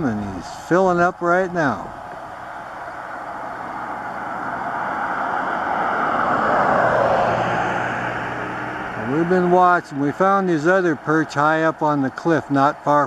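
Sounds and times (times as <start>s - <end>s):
vehicle passing on road: 0.0s - 13.0s.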